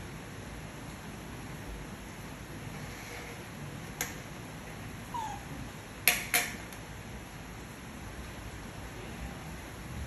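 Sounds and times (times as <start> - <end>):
baby monkey squeaking: 5.1 - 5.5.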